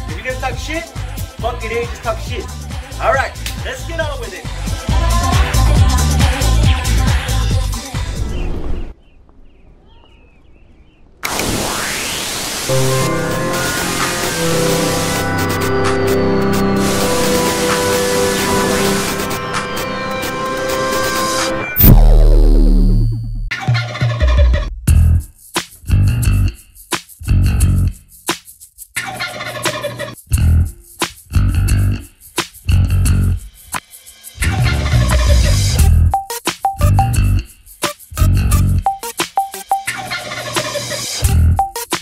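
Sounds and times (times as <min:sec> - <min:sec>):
bass and guitar backing music: 0:00.0 - 0:07.8, 0:24.5 - 0:26.6, 0:27.2 - 0:28.2, 0:30.2 - 0:33.5, 0:34.4 - 0:39.4, 0:41.2 - 0:41.8
synthesized music notes: 0:12.7 - 0:23.5, 0:34.8 - 0:40.1
turkey gobbling: 0:29.0 - 0:30.2.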